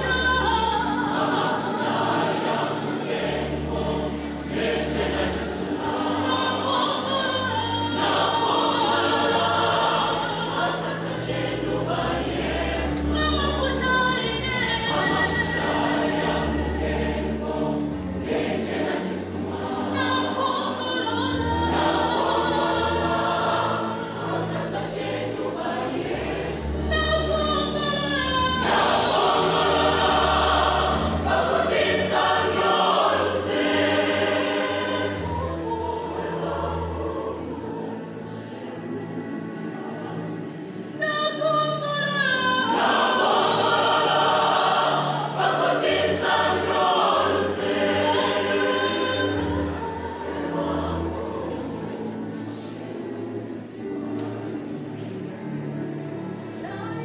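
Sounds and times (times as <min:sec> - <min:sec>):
choir singing gospel in harmony: 0:00.0 - 0:57.0.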